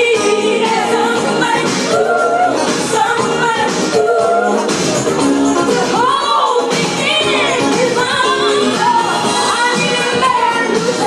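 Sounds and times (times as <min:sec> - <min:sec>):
loud pop music: 0:00.0 - 0:11.0.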